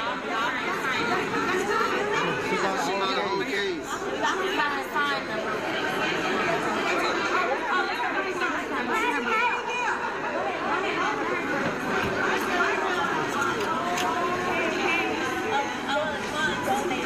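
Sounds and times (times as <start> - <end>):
overlapping voices talking: 0.0 - 17.0.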